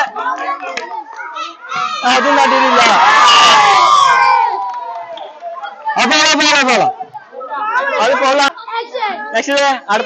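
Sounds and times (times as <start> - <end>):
crowd shouting and cheering: 0.0 - 8.9.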